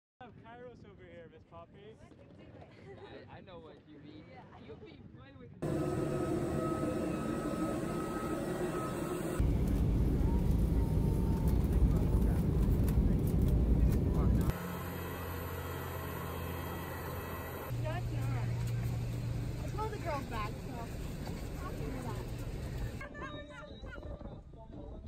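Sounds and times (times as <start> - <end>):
jet engines rumbling in cabin: 5.6 - 23.0
mechanical hum with held tones: 5.6 - 23.0.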